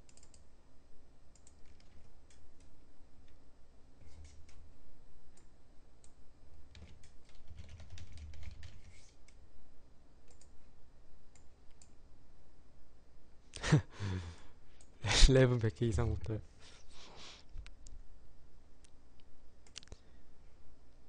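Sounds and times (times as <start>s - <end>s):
keyboard typing clicks: 0.0s - 0.5s, 1.3s - 3.4s, 5.4s - 9.4s, 10.2s - 10.6s, 19.6s - 20.0s.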